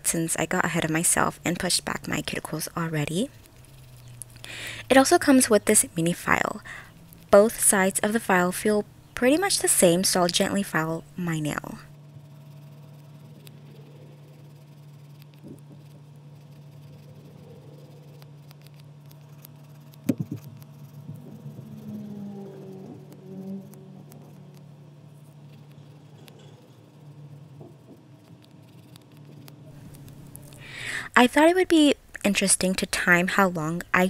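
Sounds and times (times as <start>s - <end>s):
steady low hum: 0.0s - 34.0s
nail file scratching fingernail: 1.6s - 5.4s, 12.3s - 30.6s.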